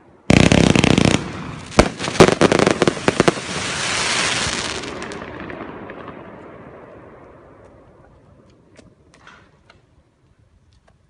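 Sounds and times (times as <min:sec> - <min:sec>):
firework crackling hiss: 0:00.3 - 0:05.2
firework crackling burst: 0:00.3 - 0:06.2
firework sharp bangs: 0:00.3 - 0:07.2.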